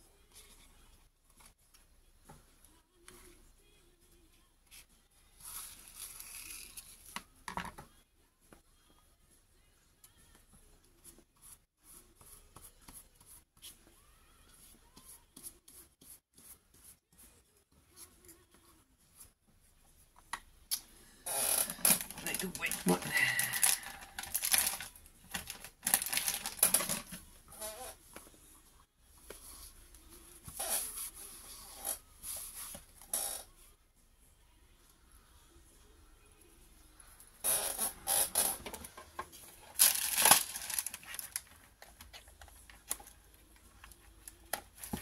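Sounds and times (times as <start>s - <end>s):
brush strokes on paper: 11.0s - 20.0s, 29.2s - 32.9s
person's voice: 22.1s - 24.0s.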